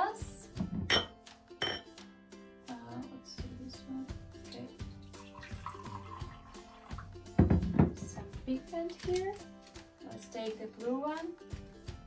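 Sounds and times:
background music: 0.0s - 12.0s
water pouring into a glass: 4.8s - 7.2s.

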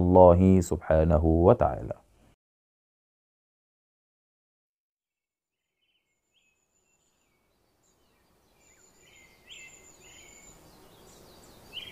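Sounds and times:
soft outdoor hiss: 5.6s - 11.9s
birds chirping and whistling: 6.4s - 11.9s.

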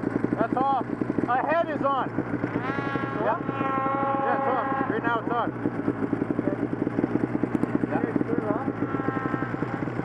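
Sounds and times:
snowmobile engine idling: 0.0s - 10.0s
person's long voiced call: 2.6s - 4.9s.

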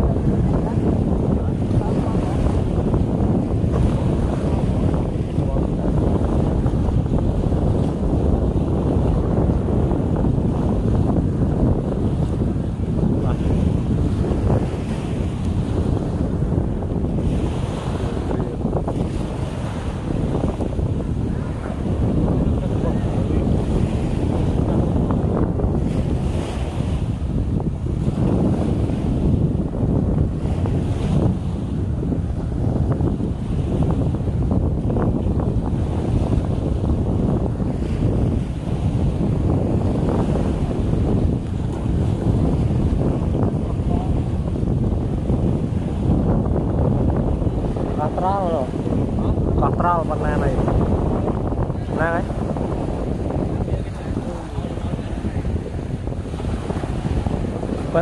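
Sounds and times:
small waves breaking on beach: 0.0s - 58.0s
wind buffeting microphone: 0.0s - 58.0s.

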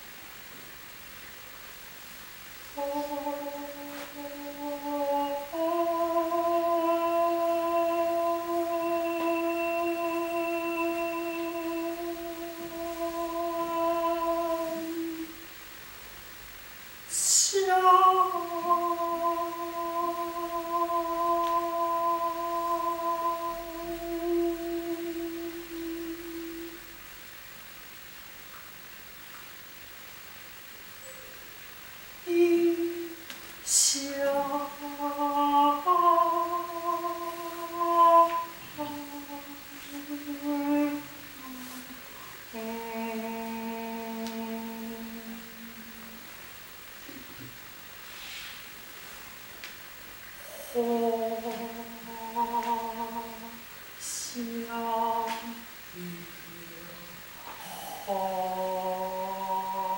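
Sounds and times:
woman singing wordless notes: 2.7s - 15.6s, 17.0s - 27.4s, 32.2s - 46.6s, 50.3s - 59.9s.

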